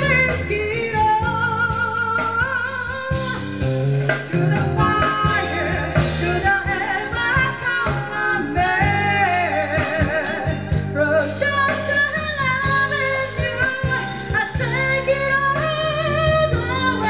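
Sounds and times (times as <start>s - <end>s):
jazz band playing: 0.0s - 17.0s
woman singing: 0.0s - 17.0s.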